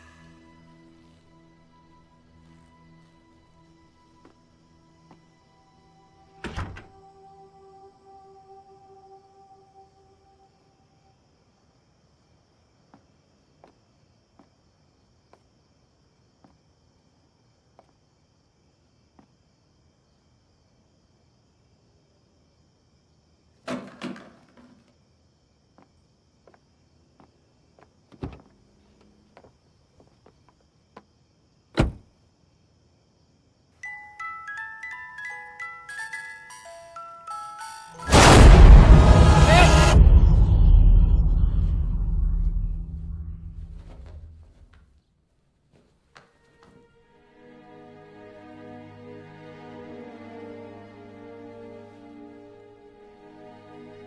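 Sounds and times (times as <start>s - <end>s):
music box melody: 33.8s - 38.1s
horror sting with low rumble: 38.1s - 44.5s.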